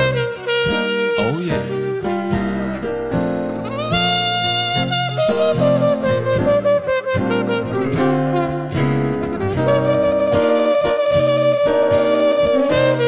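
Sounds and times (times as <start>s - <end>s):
muted trumpet blues solo: 0.0s - 13.0s
strummed acoustic guitar chords: 0.0s - 13.0s.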